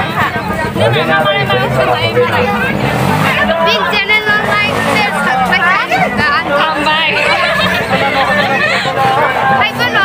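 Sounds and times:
crowd chatter: 0.0s - 10.0s
people talking close: 0.0s - 10.0s.

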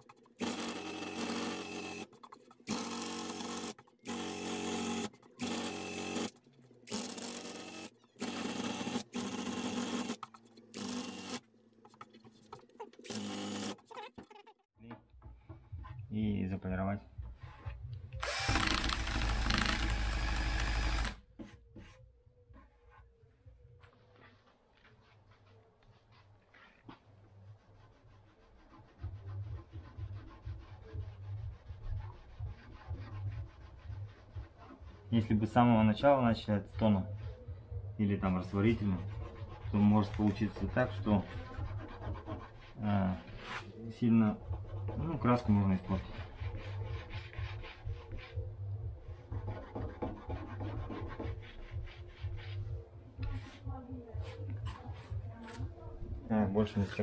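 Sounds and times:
cloth rubbing on metal: 24.0s - 56.0s.

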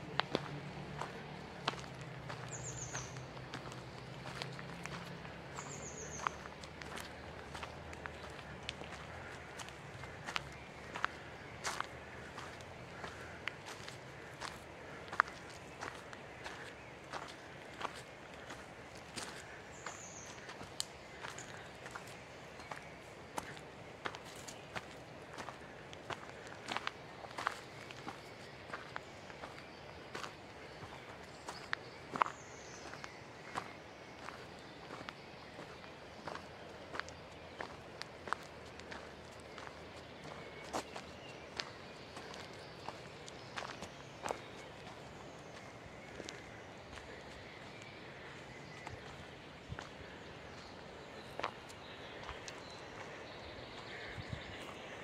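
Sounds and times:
footsteps on dirt trail with leaves: 0.0s - 55.0s.

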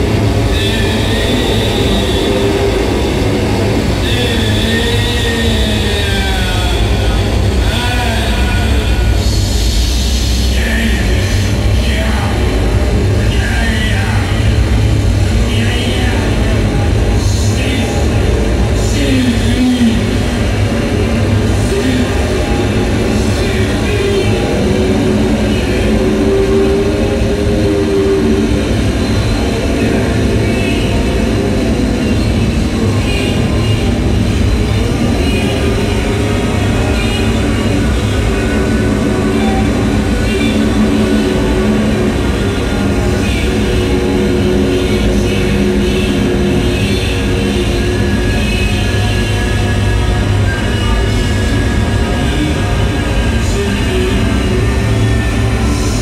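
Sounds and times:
experimental noise music: 0.0s - 56.0s.

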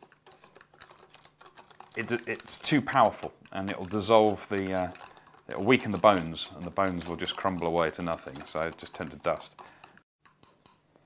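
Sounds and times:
hands tapping plastic pot and tray: 1.9s - 10.8s.

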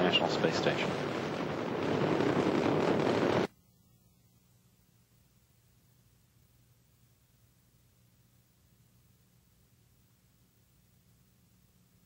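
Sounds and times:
rocket engines roaring: 0.0s - 3.5s.

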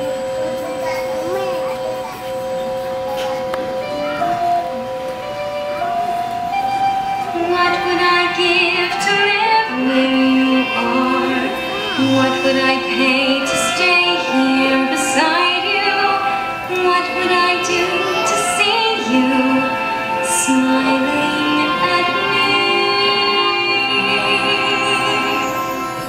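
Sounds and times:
orchestral accompaniment: 0.0s - 26.0s
woman singing with vibrato: 7.3s - 26.0s.

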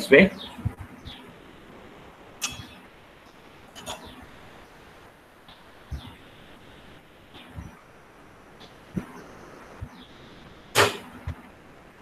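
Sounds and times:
loud burst of noise: 4.3s - 12.0s.

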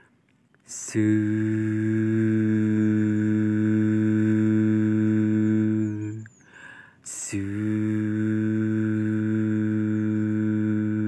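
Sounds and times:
person humming low note: 0.7s - 6.3s, 7.1s - 11.0s
short breath: 6.4s - 7.1s.

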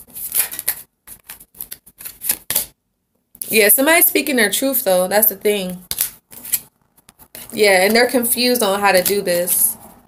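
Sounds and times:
cards being shuffled: 0.1s - 2.7s, 5.9s - 8.0s.

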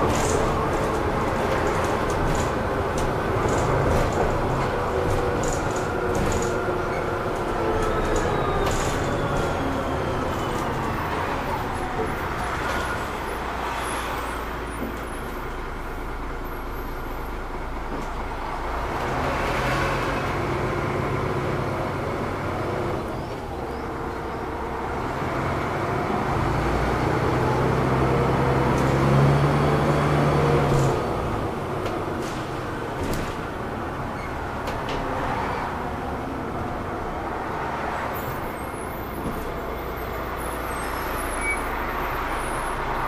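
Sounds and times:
bus diesel engine: 0.0s - 43.0s
road noise: 0.0s - 43.0s.

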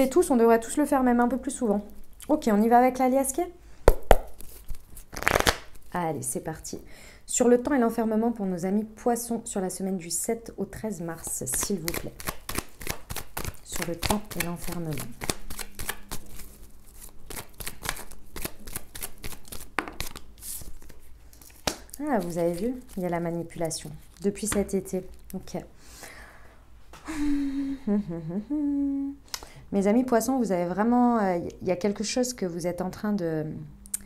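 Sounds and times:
cards sliding and slapping: 4.1s - 5.8s, 11.6s - 23.0s
card deck tapping: 17.3s - 20.2s.

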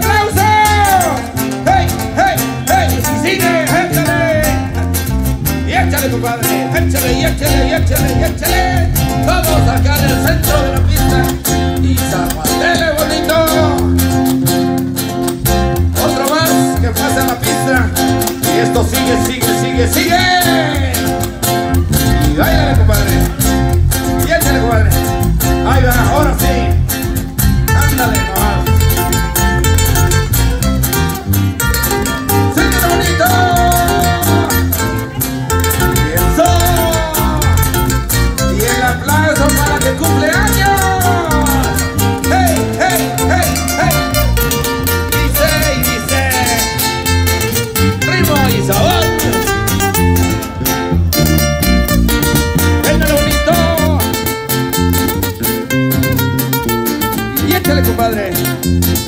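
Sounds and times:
guitars: 0.0s - 59.0s
live band playing dance music: 0.0s - 59.0s
steady bass beat: 0.0s - 59.0s.

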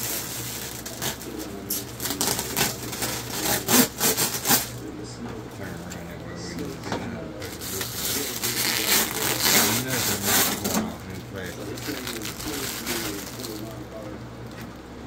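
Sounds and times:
plastic wrap crinkling: 0.0s - 4.8s, 7.4s - 13.9s.

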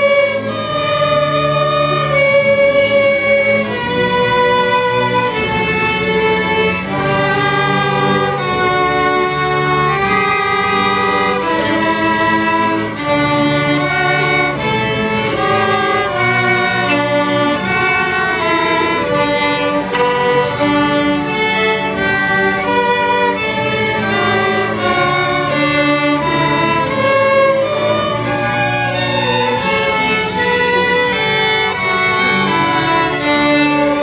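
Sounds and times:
lower bowed string part: 0.0s - 34.0s
violin bowed melody: 0.0s - 34.0s.

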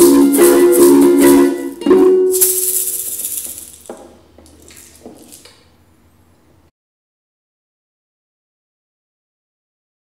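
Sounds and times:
hands knocking on ukulele: 0.0s - 2.4s
ukulele strummed chord: 0.0s - 3.1s.

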